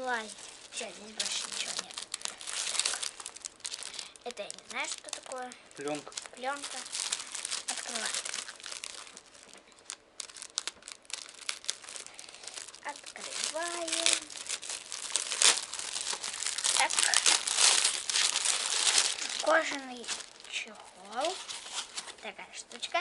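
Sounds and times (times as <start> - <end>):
plastic film crinkling: 0.0 - 23.0.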